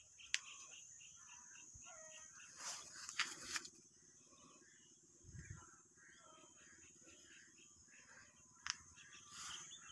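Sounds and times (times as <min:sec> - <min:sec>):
soft chirps: 0:00.0 - 0:09.9
brief rustle: 0:02.6 - 0:03.8.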